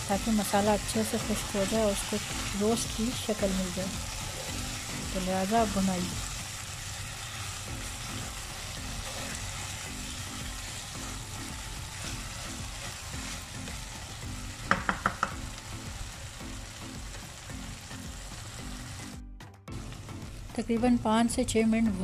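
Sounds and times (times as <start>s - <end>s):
spatula stirring in a wok: 0.0s - 18.6s
chicken sizzling in a wok: 0.0s - 22.0s.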